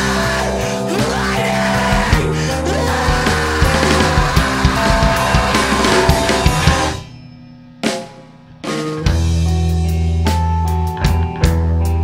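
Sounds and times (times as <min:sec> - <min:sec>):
distorted electric guitars: 0:00.0 - 0:12.0
drum kit: 0:00.0 - 0:12.0.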